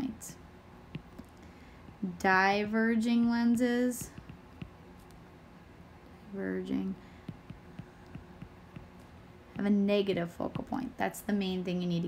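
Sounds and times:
faint low hum: 0.0s - 12.0s
stylus tapping on glass screen: 0.9s - 1.3s, 4.0s - 5.2s, 7.2s - 9.7s.

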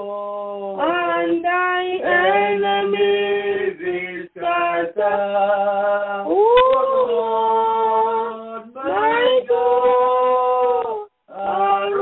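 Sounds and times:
voices singing a hymn: 0.0s - 12.0s.

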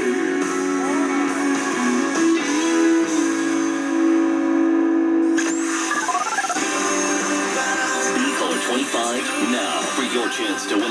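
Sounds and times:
country music on radio: 0.0s - 10.9s.

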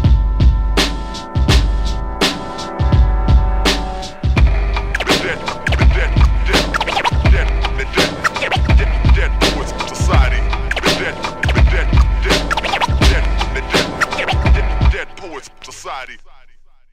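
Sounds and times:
hip hop beat with bass and drums: 0.0s - 16.7s
turntable scratches: 3.7s - 16.4s.

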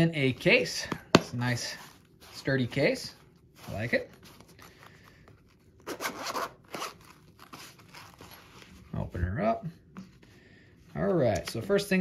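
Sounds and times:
zipper being pulled: 5.8s - 8.4s.

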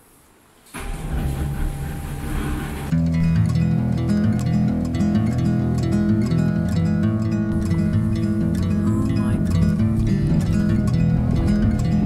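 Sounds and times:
faint mechanical hum: 0.0s - 3.0s
rail car rumbling and rattling: 0.8s - 3.0s, 7.5s - 12.0s.

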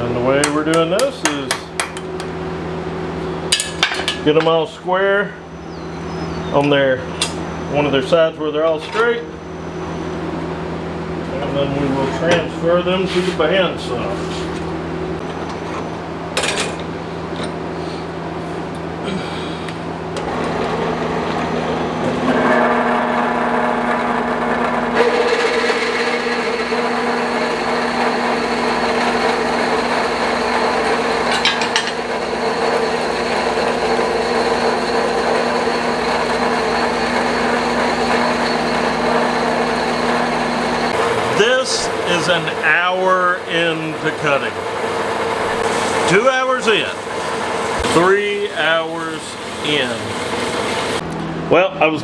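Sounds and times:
bandsaw cutting metal whine: 20.1s - 51.1s.

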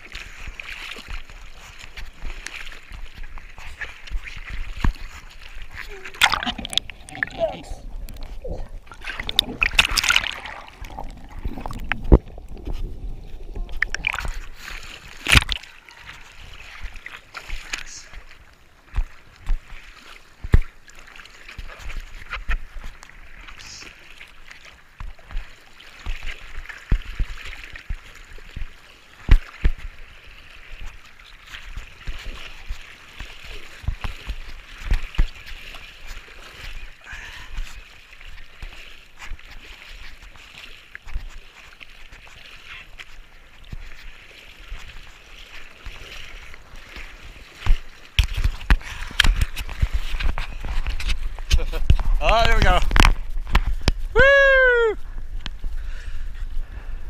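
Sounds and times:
water sloshing against surfboard: 0.0s - 57.0s
sharp water slaps: 0.7s - 7.0s, 8.9s - 12.2s, 13.7s - 15.7s, 18.9s - 20.8s, 25.0s - 30.0s, 31.5s - 36.8s, 44.8s - 54.1s.

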